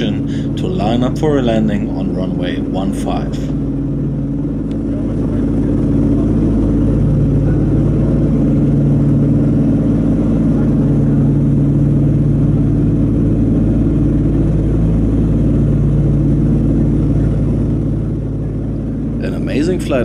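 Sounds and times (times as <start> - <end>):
aircraft piston engines droning: 0.0 - 20.0.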